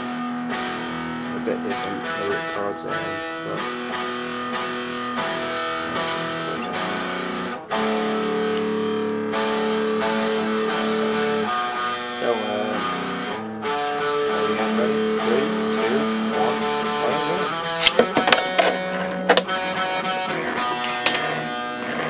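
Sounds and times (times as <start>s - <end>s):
strummed guitar music: 0.0s - 22.0s
plastic clicks and knocks: 17.8s - 19.6s.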